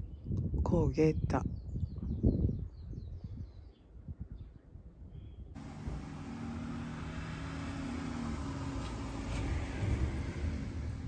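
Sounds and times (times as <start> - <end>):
motor rumble with hum: 5.6 - 11.0.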